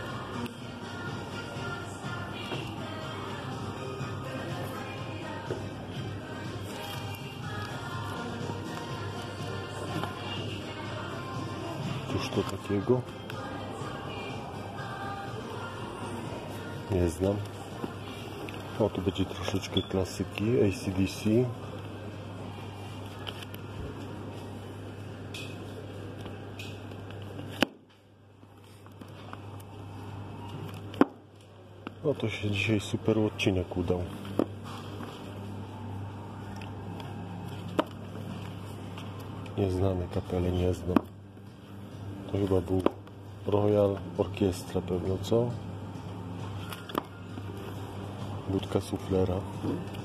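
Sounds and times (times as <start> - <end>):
low room hum: 0.0 - 50.0.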